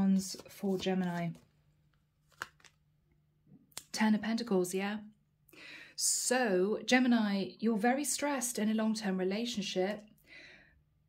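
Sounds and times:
crisp card snaps: 2.2 - 2.8.

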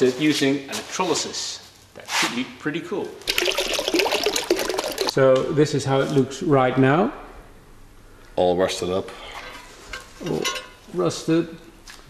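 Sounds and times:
water pouring from plastic bottles: 3.2 - 5.2
water splashing into plastic tub: 3.2 - 5.2.

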